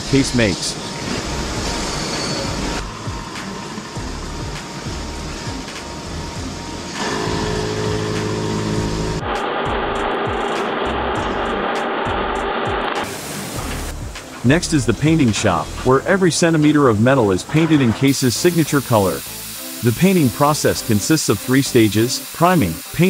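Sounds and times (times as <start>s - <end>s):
machine tools running: 0.1s - 14.0s, 15.1s - 23.0s.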